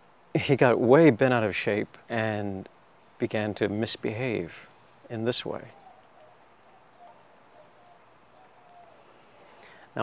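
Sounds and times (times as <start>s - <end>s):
faint short bird calls: 4.6s - 10.0s.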